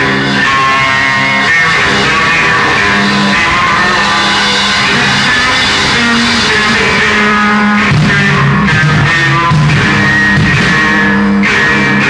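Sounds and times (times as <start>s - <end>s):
distorted electric guitar noise rock: 0.0s - 12.0s.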